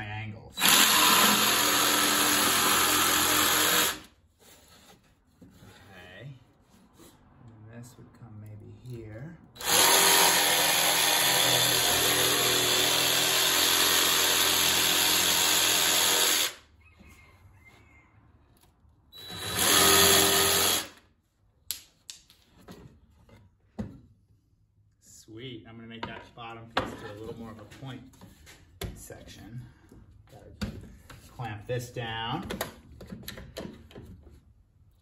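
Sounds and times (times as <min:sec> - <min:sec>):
jigsaw cutting wood: 0:00.6 - 0:04.1, 0:09.6 - 0:16.6, 0:19.2 - 0:21.0.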